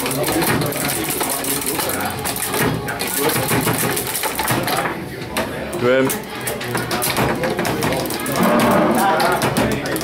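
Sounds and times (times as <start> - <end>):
table football clicking and knocking: 0.0 - 5.5, 6.2 - 10.0
people chatting: 4.6 - 10.0.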